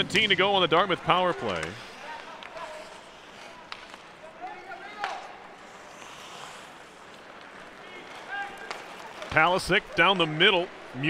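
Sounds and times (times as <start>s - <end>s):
puck clacks: 0.0s - 11.0s
distant shouts: 7.8s - 11.0s.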